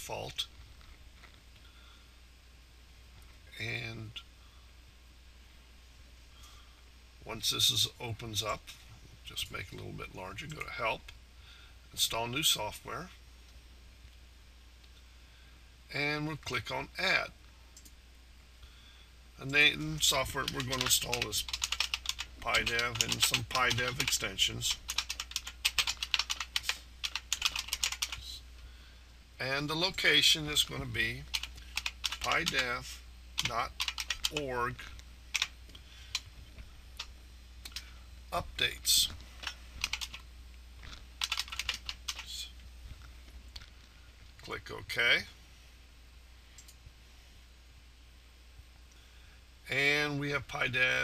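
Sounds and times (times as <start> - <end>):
man speaking: 0.0 - 0.5, 3.5 - 4.2, 9.3 - 11.1, 11.9 - 13.1, 15.9 - 17.3, 19.4 - 21.5, 22.4 - 24.9, 29.4 - 31.3, 32.2 - 35.0, 38.3 - 39.2, 42.2 - 42.6, 44.4 - 45.4, 49.7 - 51.0
computer keyboard typing: 20.3 - 28.2, 31.2 - 32.7, 33.4 - 34.5, 35.3 - 35.5, 39.4 - 40.2, 41.2 - 42.3.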